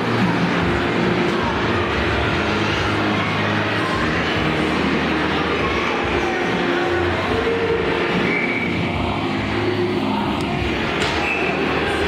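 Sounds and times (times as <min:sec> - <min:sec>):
indoor ice rink din: 0:00.0 - 0:12.0.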